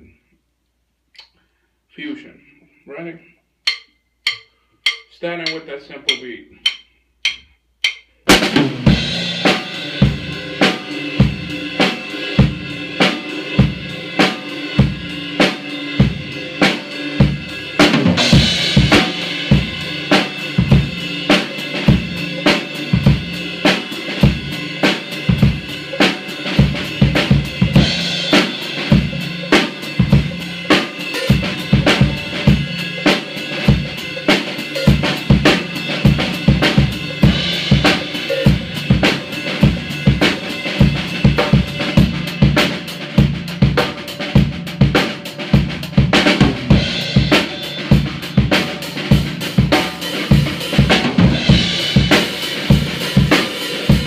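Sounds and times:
snare drum strokes: 3.7s - 9.7s.

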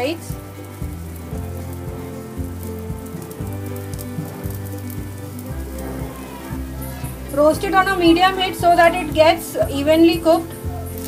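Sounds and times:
background music: 0.0s - 11.0s
patties sizzling in hot oil: 0.0s - 11.0s.

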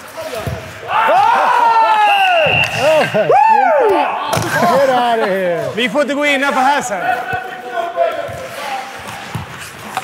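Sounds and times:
men shouting and calling out: 0.8s - 8.4s.

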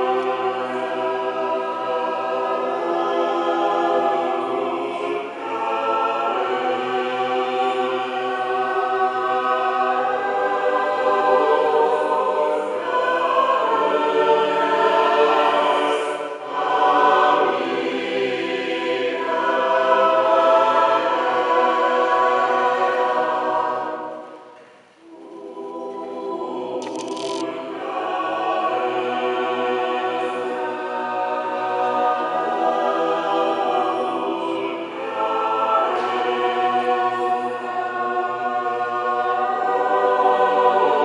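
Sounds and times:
mixed choir singing: 0.0s - 41.0s.

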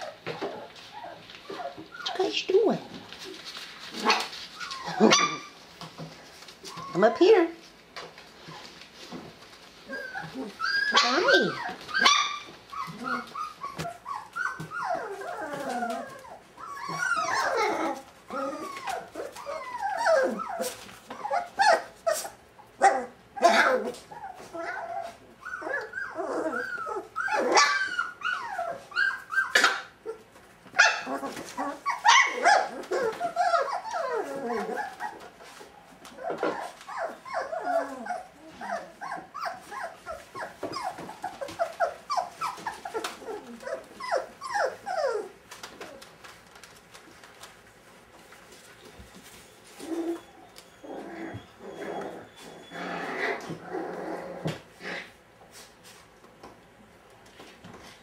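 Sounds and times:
puppies whining and yelping: 0.0s - 7.4s, 8.4s - 55.1s.

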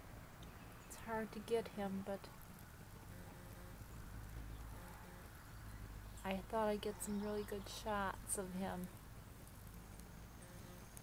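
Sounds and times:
moth wings humming: 0.4s - 11.0s.

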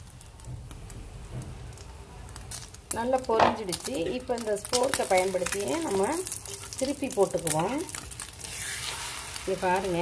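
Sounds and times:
hot oil crackling and popping: 0.0s - 10.0s.

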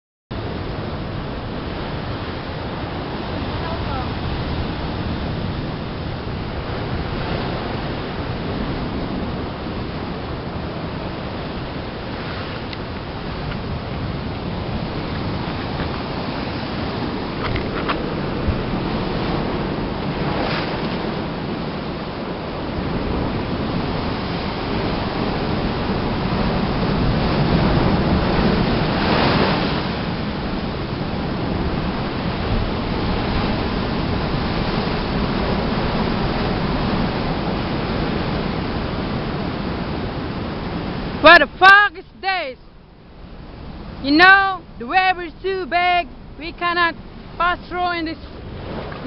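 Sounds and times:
ocean surf breaking on rocks: 0.4s - 49.0s.

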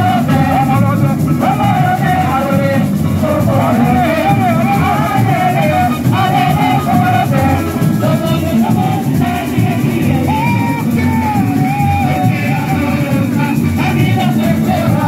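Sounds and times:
person singing: 0.0s - 15.0s
samba drums: 0.0s - 15.0s.

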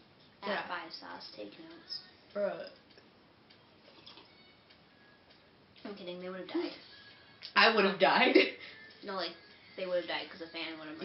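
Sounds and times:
woman speaking: 0.4s - 2.8s, 5.8s - 6.8s, 7.5s - 11.0s.

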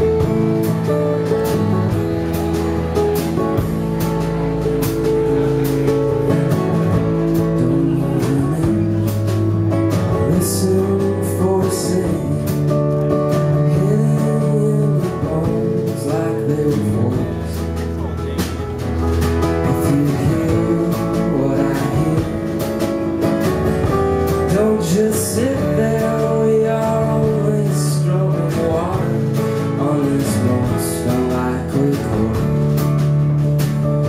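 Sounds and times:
drums: 0.0s - 34.0s
strummed acoustic guitar: 0.0s - 34.0s
upright bass: 0.0s - 34.0s.

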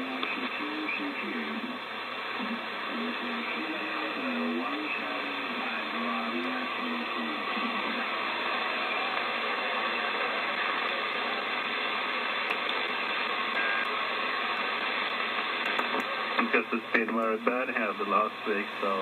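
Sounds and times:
faint garbled voice: 0.0s - 11.4s
radio static hiss: 0.0s - 19.0s.

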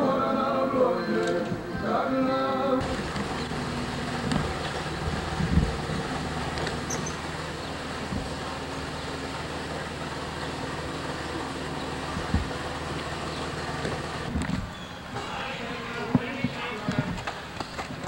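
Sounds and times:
low hum: 2.6s - 17.2s.

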